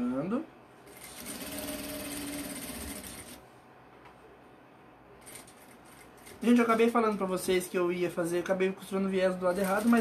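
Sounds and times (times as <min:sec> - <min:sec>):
sewing machine running: 0:00.9 - 0:03.4, 0:05.2 - 0:06.9, 0:09.5 - 0:10.0.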